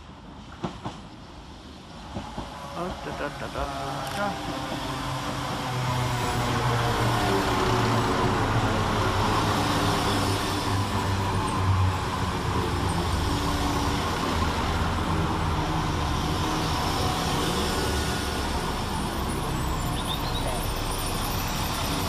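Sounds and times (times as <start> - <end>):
train diesel engines running: 0.0 - 22.0
train wheel and rail noise: 0.0 - 22.0.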